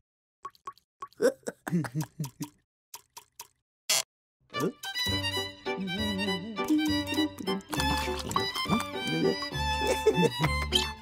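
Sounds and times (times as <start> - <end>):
cartoon watery pops: 0.4 - 3.6
cartoon character giggling: 1.2 - 2.5, 9.2 - 10.7.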